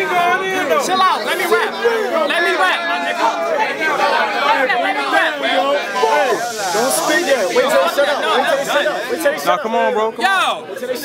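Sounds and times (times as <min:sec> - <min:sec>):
loud crowd chatter: 0:00.0 - 0:11.0.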